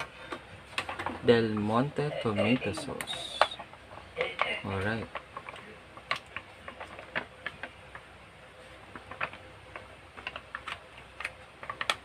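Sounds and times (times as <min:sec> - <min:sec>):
small pops and clicks of simmering: 0:05.1 - 0:08.1.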